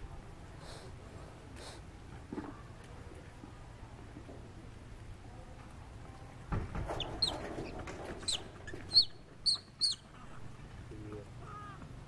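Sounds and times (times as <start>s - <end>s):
animal squeaking: 6.9s - 10.6s.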